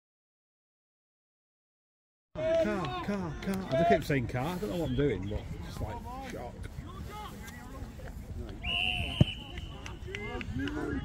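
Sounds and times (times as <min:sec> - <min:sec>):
players and spectators shouting: 0:02.4 - 0:07.9
referee's whistle: 0:04.7 - 0:05.4, 0:08.6 - 0:10.1.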